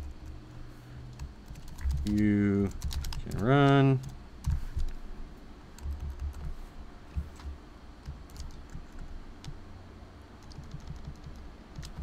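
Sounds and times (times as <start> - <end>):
keyboard typing: 1.1 - 5.0, 5.8 - 9.6, 10.4 - 12.0.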